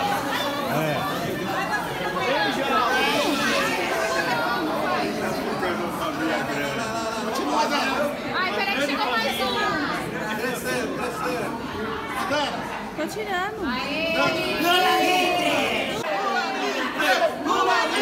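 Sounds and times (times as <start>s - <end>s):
overlapping voices and chatter: 0.0s - 18.0s.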